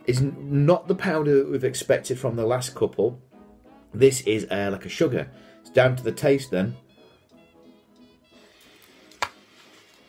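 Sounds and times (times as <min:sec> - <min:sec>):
quiet festive music: 0:00.0 - 0:10.0.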